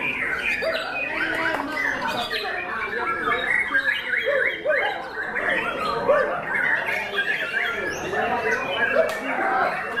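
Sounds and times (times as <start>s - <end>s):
birds whistling and chirping: 0.0s - 10.0s.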